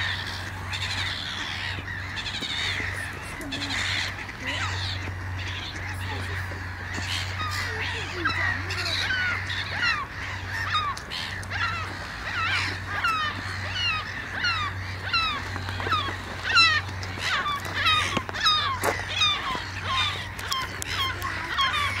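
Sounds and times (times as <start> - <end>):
gulls calling: 0.0 - 22.0.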